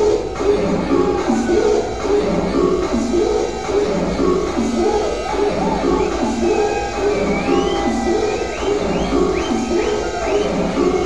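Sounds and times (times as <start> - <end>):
looping synth bass riff: 4.0 - 8.1.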